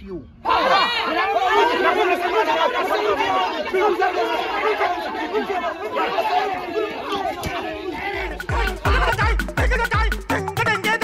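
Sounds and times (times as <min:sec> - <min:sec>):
babble of overlapping voices: 0:00.4 - 0:09.8.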